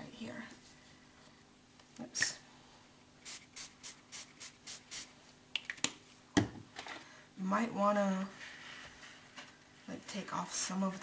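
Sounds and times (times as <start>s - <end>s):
spray bottle spritzing: 3.2s - 5.1s.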